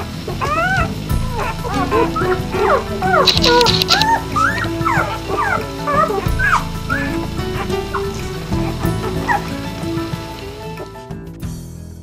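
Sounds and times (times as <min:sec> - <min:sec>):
background music: 0:00.0 - 0:12.0
puppies squeaking and whimpering: 0:00.3 - 0:10.1.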